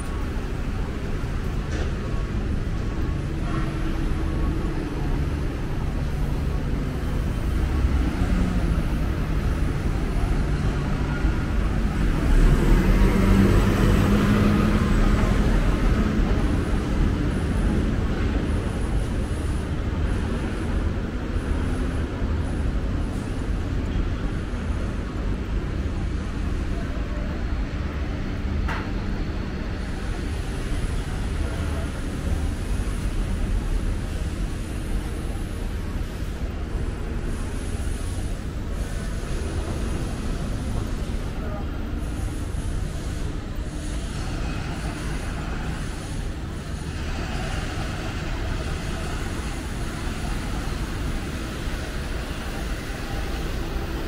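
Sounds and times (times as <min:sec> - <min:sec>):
road traffic passing: 0:00.0 - 0:54.0
vehicle passing by: 0:12.1 - 0:15.8.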